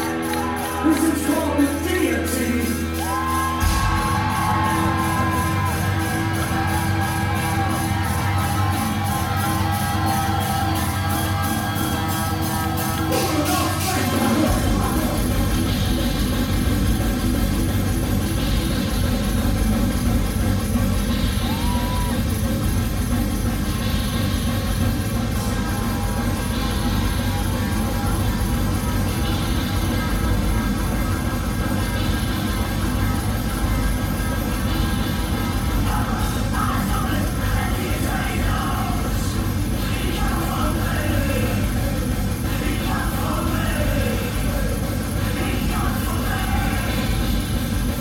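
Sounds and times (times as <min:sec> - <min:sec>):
live metal band: 0:00.0 - 0:48.0.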